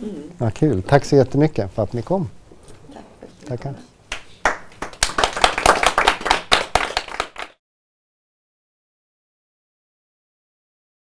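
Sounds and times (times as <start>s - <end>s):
small audience applauding: 4.1s - 7.6s.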